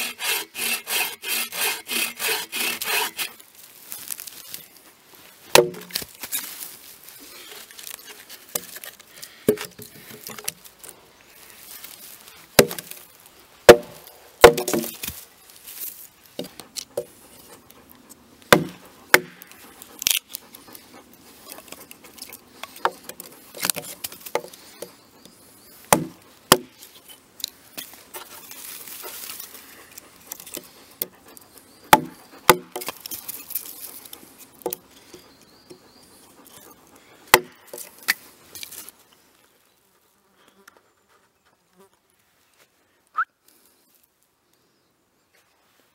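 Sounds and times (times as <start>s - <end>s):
wood splitting crackle: 0.0s - 24.9s, 25.9s - 35.3s, 37.3s - 39.3s
hatchet chopping wood: 5.5s - 6.1s, 9.4s - 10.5s, 12.6s - 13.0s, 13.7s - 15.2s, 18.5s - 20.2s, 25.9s - 26.8s, 31.9s - 33.2s, 37.3s - 38.2s
wood knocking on wood: 13.7s - 15.0s.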